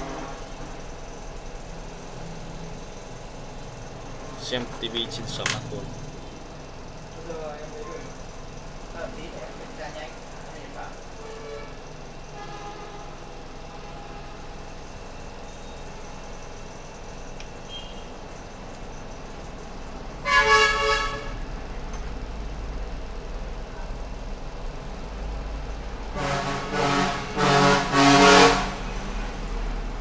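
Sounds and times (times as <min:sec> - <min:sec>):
loud vehicle horn honk: 0:00.0 - 0:00.6, 0:11.2 - 0:14.4, 0:20.2 - 0:21.4, 0:26.1 - 0:29.4
low rumble of traffic: 0:00.0 - 0:30.0.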